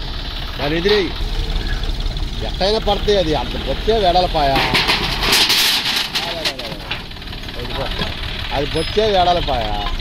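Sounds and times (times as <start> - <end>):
tractor diesel engine running: 0.0 - 10.0
bricks scraping and clattering: 4.5 - 7.0.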